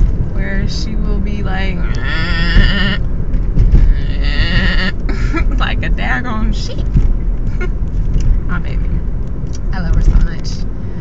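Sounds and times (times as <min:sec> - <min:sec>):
car cabin rumble: 0:00.0 - 0:11.0
person imitating sheep bleat: 0:02.0 - 0:03.0.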